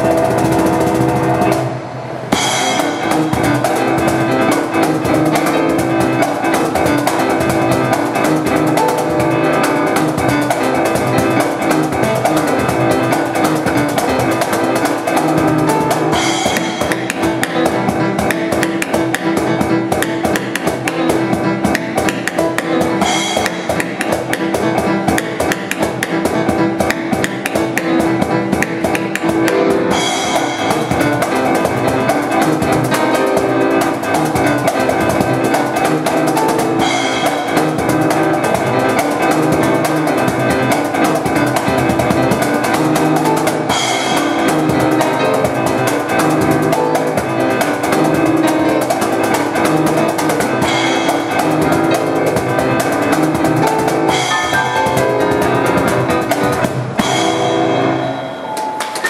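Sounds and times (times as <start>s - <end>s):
cajon beat: 0.0s - 57.5s
electronic keyboard piano: 0.0s - 59.0s.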